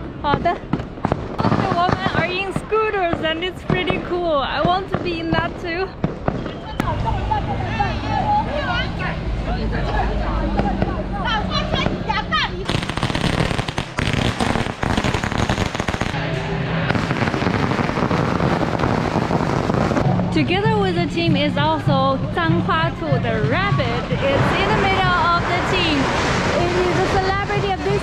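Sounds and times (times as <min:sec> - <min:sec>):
crowd voices: 0:00.0 - 0:14.7, 0:15.7 - 0:28.0
firecrackers crackling: 0:00.2 - 0:06.9, 0:12.6 - 0:16.2, 0:16.9 - 0:20.0, 0:24.3 - 0:28.0.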